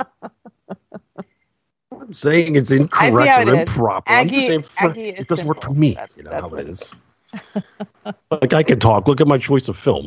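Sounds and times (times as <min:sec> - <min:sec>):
person chuckling: 0:07.4 - 0:08.9.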